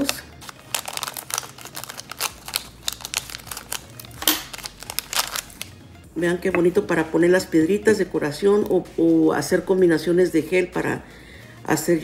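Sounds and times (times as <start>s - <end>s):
plastic pouch crinkling: 0.0s - 5.8s.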